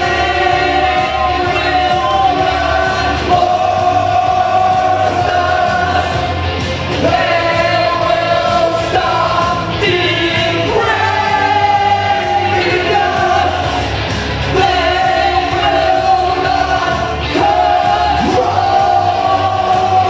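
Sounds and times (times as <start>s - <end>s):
backing track music: 0.0s - 20.0s
man and woman singing duet: 0.0s - 20.0s.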